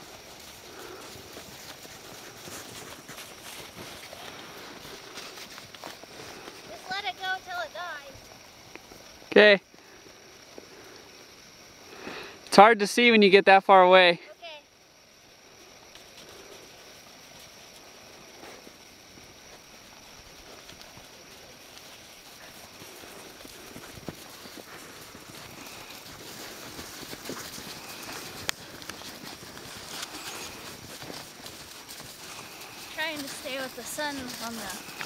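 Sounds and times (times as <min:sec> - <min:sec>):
horse hooves crunching through snow: 0:00.0 - 0:09.2, 0:15.5 - 0:35.0.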